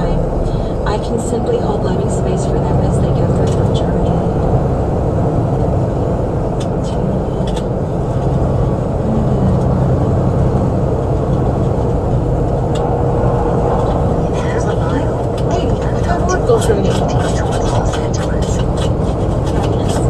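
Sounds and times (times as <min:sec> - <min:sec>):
road and engine noise in car cabin: 0:00.0 - 0:20.0.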